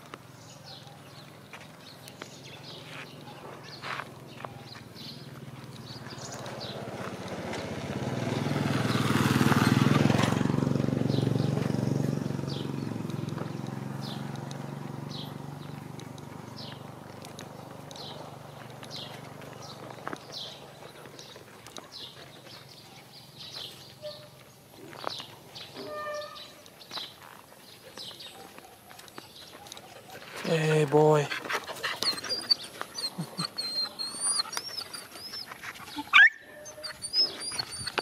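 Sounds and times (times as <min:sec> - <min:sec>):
vehicle engine passing by: 0:01.8 - 0:25.9.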